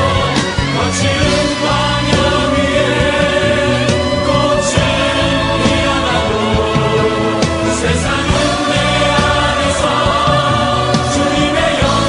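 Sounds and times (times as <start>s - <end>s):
choir singing worship song: 0.0s - 12.0s
instrumental accompaniment: 0.0s - 12.0s.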